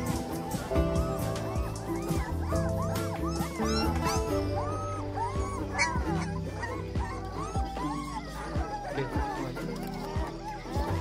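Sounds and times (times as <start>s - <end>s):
background music with held notes: 0.0s - 11.0s
puppies whimpering and yipping: 0.0s - 11.0s.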